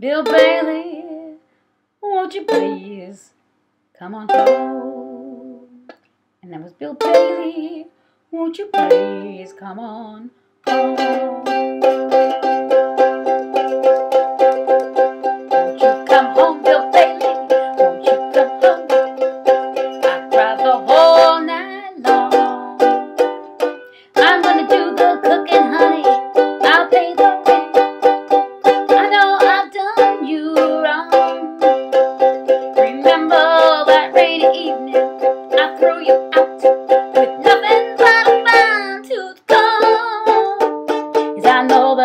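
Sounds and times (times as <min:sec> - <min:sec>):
ukulele strumming chords: 0:00.0 - 0:01.3, 0:02.3 - 0:03.0, 0:04.3 - 0:06.0, 0:07.0 - 0:07.8, 0:08.6 - 0:09.7, 0:10.6 - 0:42.0.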